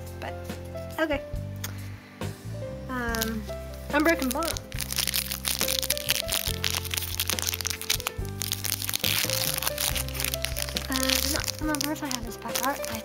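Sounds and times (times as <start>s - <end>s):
foil wrapper crinkling: 3.1s - 3.4s, 4.0s - 13.0s.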